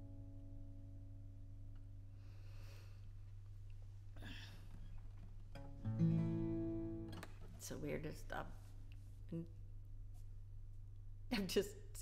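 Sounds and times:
acoustic guitar note and strum: 5.5 - 7.8.

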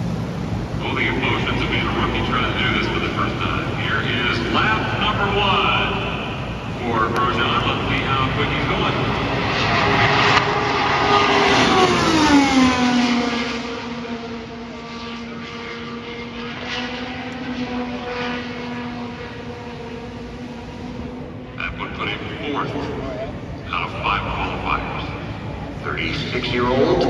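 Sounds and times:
race car passing at full throttle: 0.0 - 27.0.

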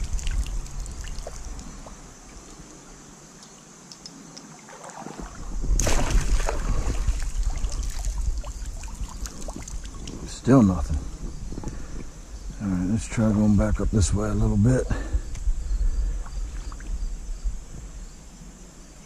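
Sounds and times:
net splashing through water: 4.5 - 10.0.

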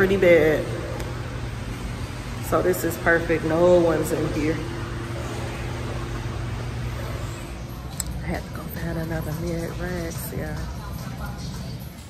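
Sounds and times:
ventilation machinery hum: 0.0 - 12.0.

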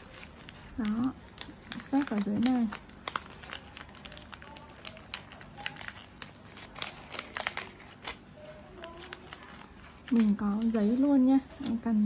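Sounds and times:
wrapping paper crinkling: 0.0 - 12.0.

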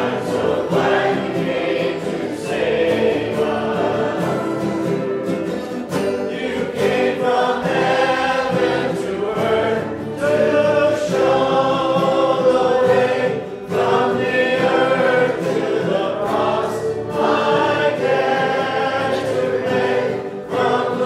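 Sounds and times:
acoustic guitar: 0.0 - 21.0
group singing worship song: 0.0 - 21.0.

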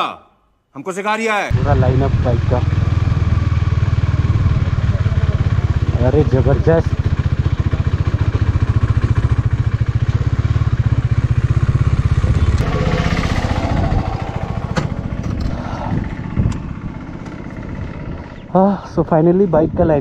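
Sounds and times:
motorcycle engine running: 1.5 - 20.0.

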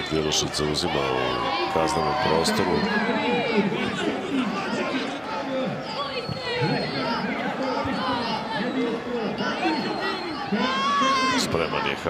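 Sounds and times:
voices calling out and chattering: 0.0 - 12.0.

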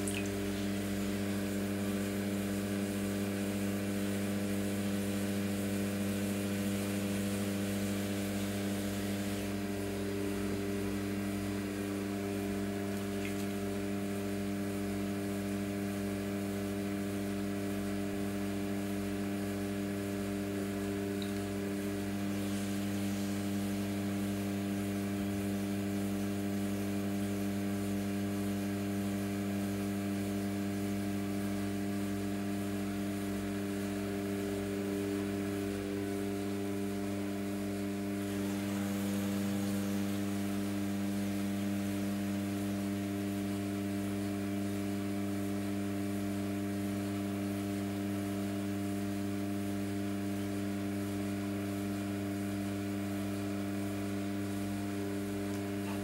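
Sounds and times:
pottery wheel motor humming: 0.0 - 56.0.

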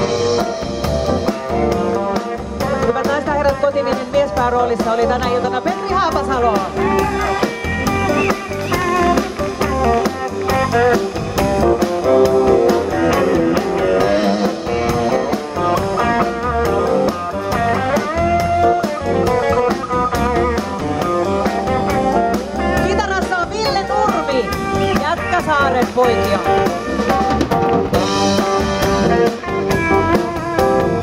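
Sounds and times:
bass guitar: 0.0 - 31.0
drum kit steady beat: 0.0 - 31.0
electric guitar melody: 0.0 - 31.0.

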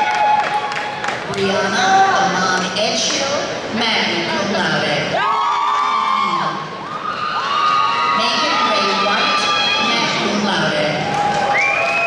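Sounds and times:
audience whooping and cheering: 0.0 - 1.2, 5.1 - 10.4, 11.0 - 12.0.

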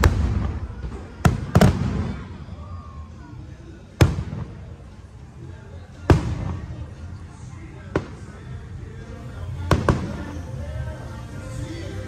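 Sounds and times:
music playing: 2.8 - 12.0.

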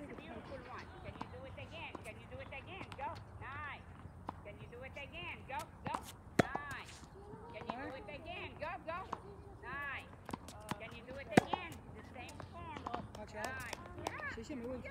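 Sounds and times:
tennis racket hitting ball: 5.6 - 7.0, 10.2 - 14.2.

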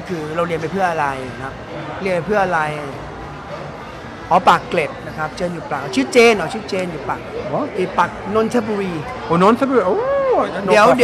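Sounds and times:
men talking: 0.0 - 3.1, 4.3 - 11.0.

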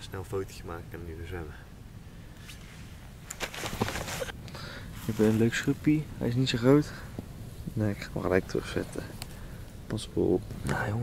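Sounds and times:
rustles and scuffs on grass: 2.4 - 6.0.

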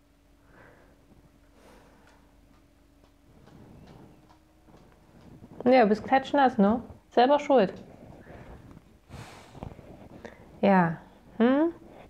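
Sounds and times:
quiet steady hum: 0.0 - 12.0
faint regular ticking: 2.0 - 7.9.

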